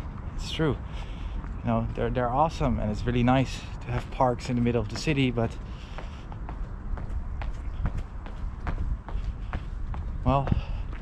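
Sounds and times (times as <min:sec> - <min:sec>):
footsteps on stone paving: 0:00.0 - 0:11.0.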